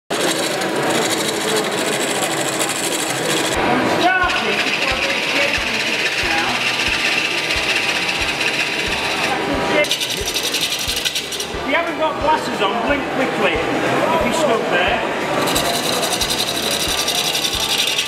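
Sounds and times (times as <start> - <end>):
lathe tool cutting wood: 0.1 - 12.0, 15.4 - 18.0.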